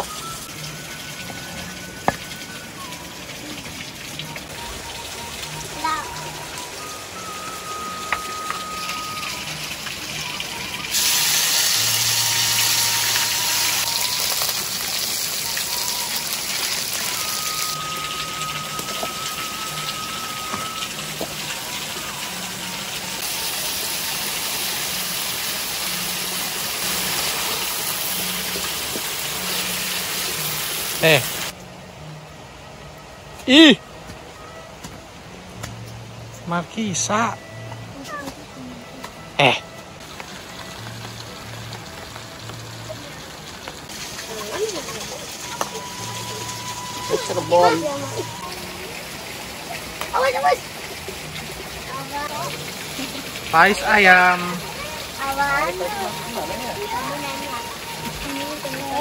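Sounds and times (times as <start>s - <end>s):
paste sizzling in hot oil: 10.8s - 17.9s, 23.2s - 31.5s.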